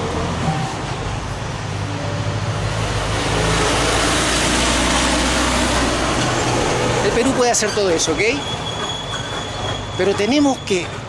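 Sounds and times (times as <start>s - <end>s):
truck driving past: 0.0s - 10.0s.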